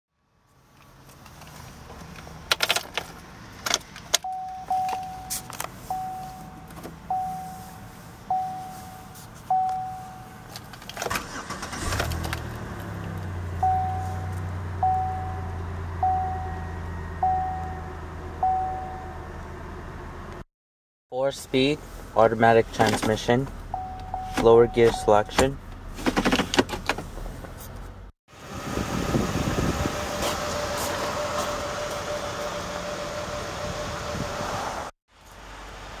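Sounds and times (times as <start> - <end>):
car engine cranking and starting: 1.2 - 20.4, 21.9 - 34.9
car warning chime dinging: 4.2 - 10.5, 13.5 - 19.3, 23.7 - 25.6.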